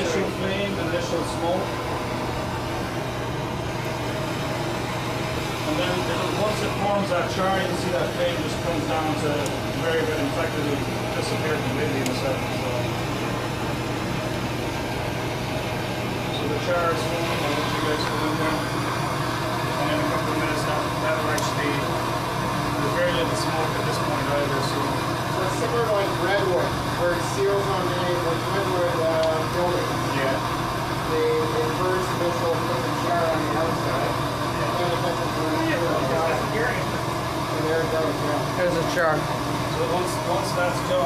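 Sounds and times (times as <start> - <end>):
constant low hum: 0.0 - 41.0
gas torch flame rushing: 0.0 - 41.0.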